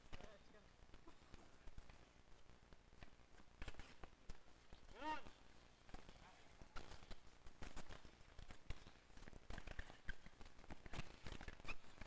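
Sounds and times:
player shouting: 0:05.0 - 0:05.3.

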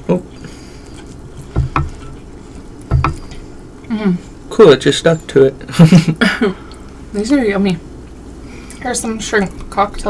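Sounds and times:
low background hum: 0:00.0 - 0:10.0
fork knocking on a plate: 0:01.5 - 0:02.2, 0:02.9 - 0:03.3.

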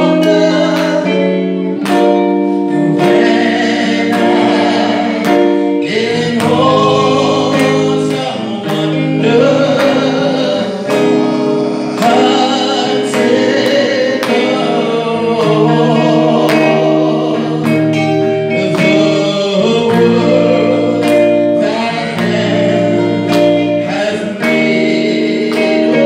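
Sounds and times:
guitar accompaniment with beat: 0:00.0 - 0:26.0.

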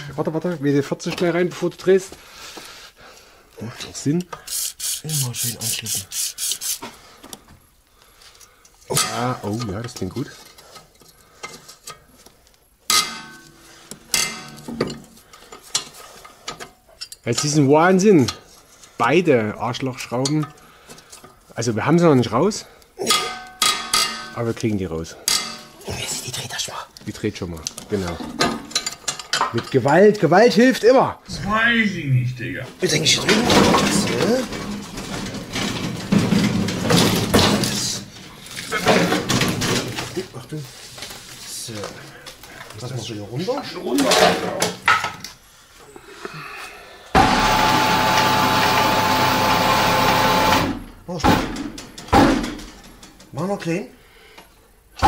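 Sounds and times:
tools rattling: 0:27.7 - 0:30.0
tool cart rolling over paving: 0:33.0 - 0:38.0.

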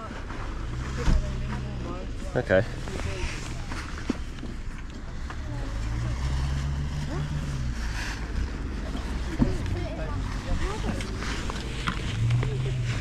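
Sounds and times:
vehicle engine hum: 0:00.0 - 0:13.0
low rumble: 0:00.4 - 0:13.0
faint voices: 0:05.0 - 0:13.0.

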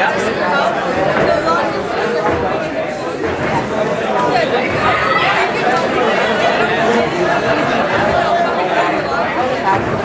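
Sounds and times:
crowd babble: 0:00.0 - 0:10.0.

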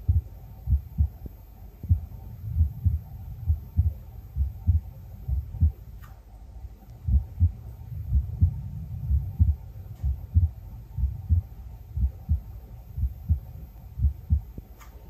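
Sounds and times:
heartbeat through stethoscope: 0:00.0 - 0:06.2, 0:06.8 - 0:15.0.

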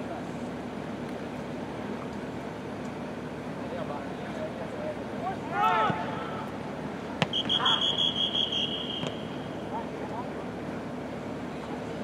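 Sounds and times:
short shout: 0:05.3 - 0:06.5, 0:07.5 - 0:08.1
referee whistle blast: 0:07.2 - 0:09.6.

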